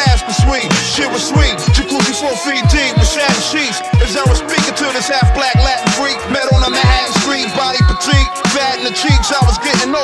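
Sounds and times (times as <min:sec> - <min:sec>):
hip hop beat with deep kicks: 0:00.0 - 0:10.0
rapping vocal: 0:00.0 - 0:10.0.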